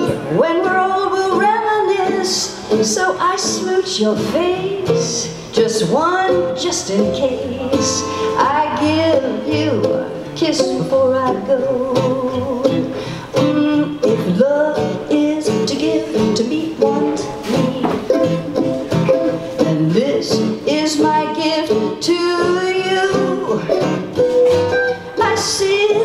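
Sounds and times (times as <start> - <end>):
acoustic guitars: 0.0 - 26.0
mandolin melody: 0.0 - 26.0.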